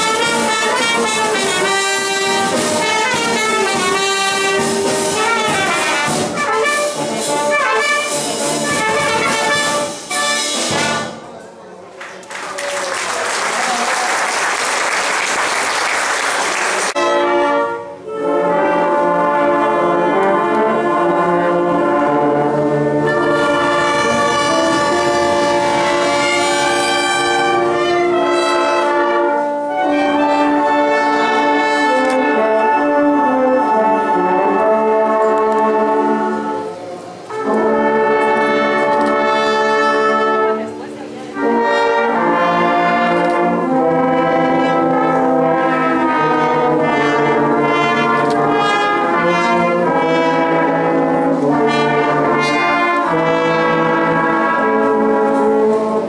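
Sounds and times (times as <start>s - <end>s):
wind band playing: 0.0s - 11.4s, 12.4s - 56.0s
loud rushing noise: 22.5s - 27.8s.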